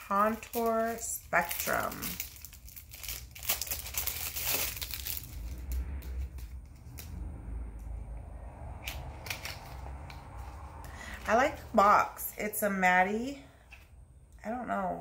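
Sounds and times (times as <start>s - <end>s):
packaging crinkling and rustling: 0.0s - 7.1s.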